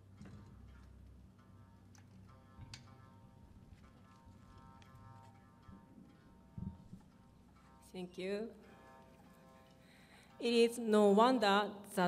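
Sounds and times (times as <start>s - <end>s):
soft plucked shamisen notes: 0.0s - 11.4s.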